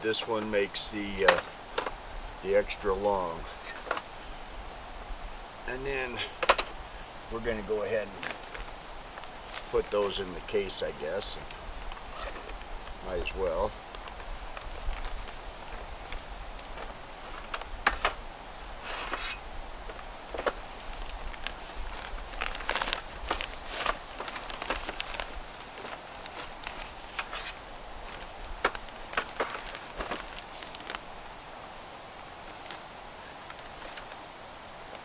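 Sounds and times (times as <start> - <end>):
fabric case rustling: 18.8 - 31.1.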